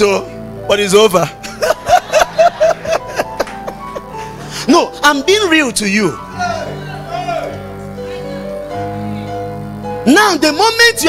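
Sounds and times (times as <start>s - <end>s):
background music: 0.0s - 11.0s
man laughing into a microphone: 1.4s - 4.4s.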